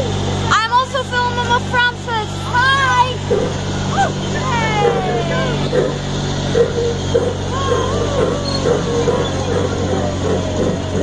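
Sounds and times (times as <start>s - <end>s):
miniature train engine running: 0.0s - 11.0s
voices: 0.0s - 11.0s.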